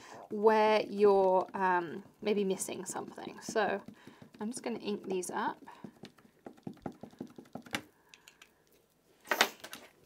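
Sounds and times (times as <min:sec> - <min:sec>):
light rapid dabbing taps: 0:00.3 - 0:07.9.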